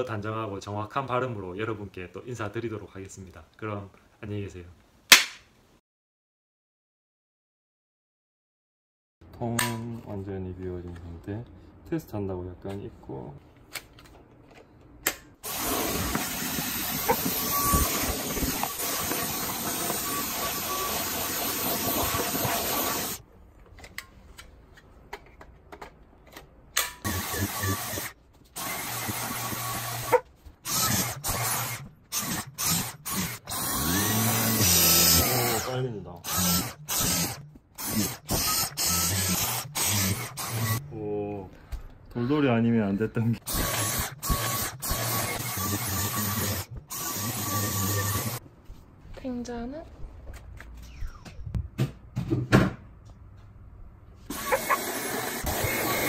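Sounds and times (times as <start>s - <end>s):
cordless vacuum running: 15.5s - 23.2s, 27.1s - 31.5s, 54.3s - 56.0s.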